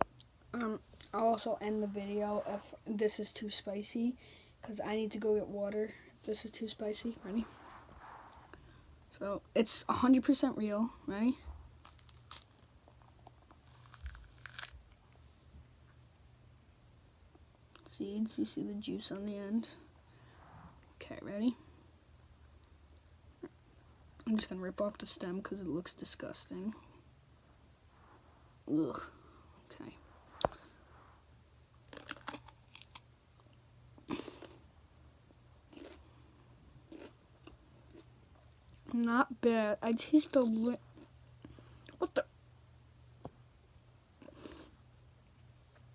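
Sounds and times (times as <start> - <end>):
pepper cracking and tearing: 11.8 - 15.0, 31.9 - 33.1.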